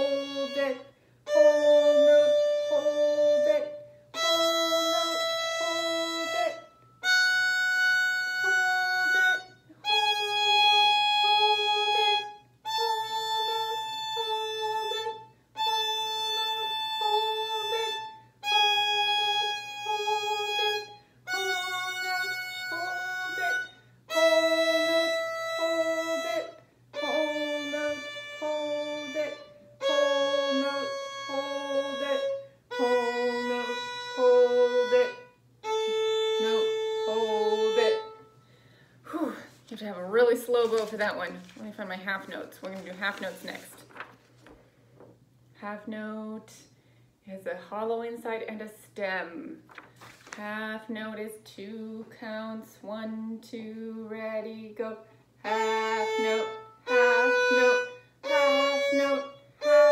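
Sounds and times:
solo violin playing a scale: 0.0s - 38.2s, 55.4s - 59.9s.

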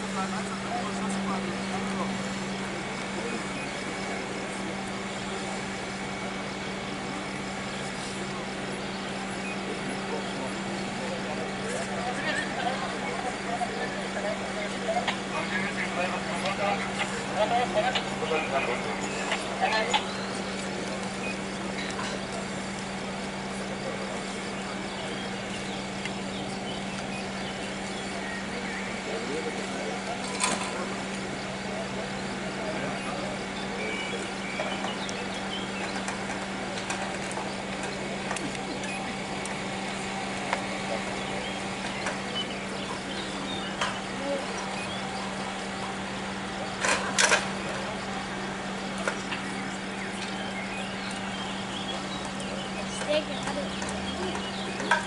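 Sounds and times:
pump engine humming: 0.0s - 55.0s.

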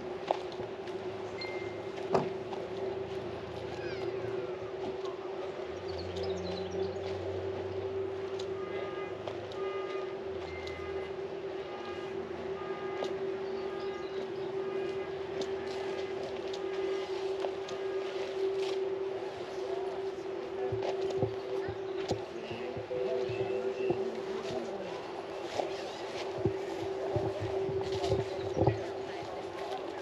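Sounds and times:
outdoor background noise: 0.0s - 30.0s
steady hum: 0.0s - 30.0s.

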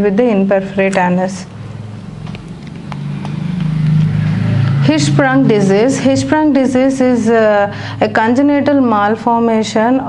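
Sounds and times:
vehicle engine hum: 1.5s - 9.3s.

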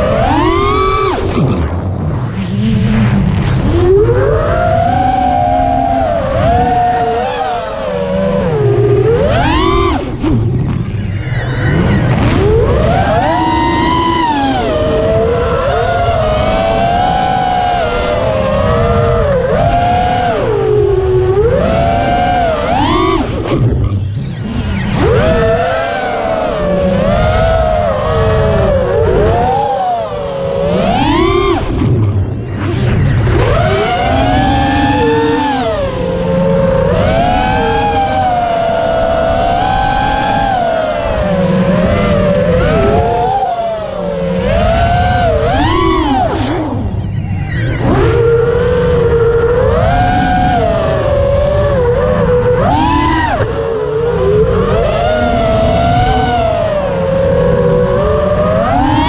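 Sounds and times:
drone motors whining: 0.0s - 59.0s
wind rumble on microphone: 0.0s - 59.0s.

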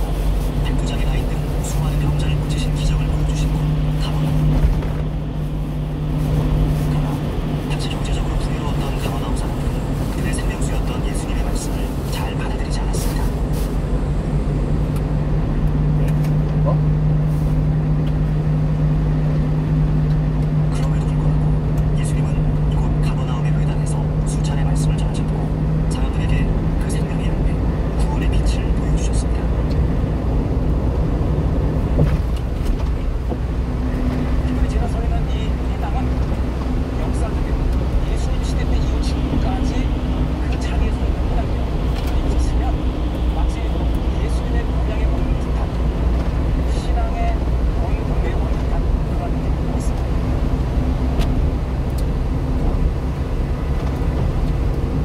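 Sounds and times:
low hum: 0.0s - 55.0s
truck engine drone: 0.0s - 55.0s
tyres on wet road: 0.0s - 55.0s.

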